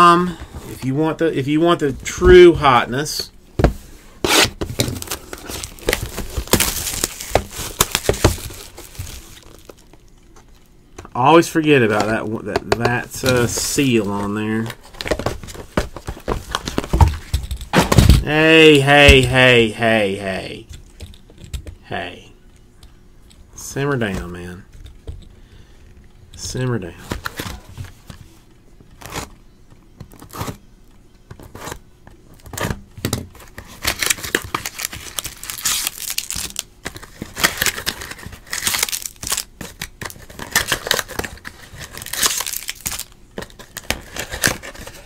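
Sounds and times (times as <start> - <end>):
cardboard tearing and crinkling: 4.2 - 9.9, 33.4 - 45.0
plastic wrapper rustling: 4.7 - 10.7, 33.3 - 45.0.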